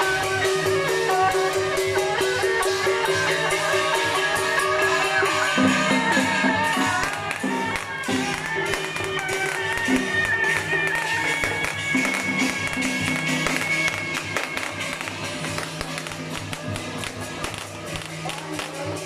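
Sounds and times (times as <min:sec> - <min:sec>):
gongs and drums beating: 0:00.0 - 0:19.0
high wavering melody: 0:00.0 - 0:19.0.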